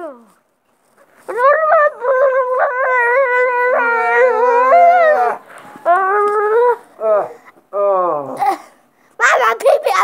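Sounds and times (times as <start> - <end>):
lower voice crying: 1.4 - 8.8.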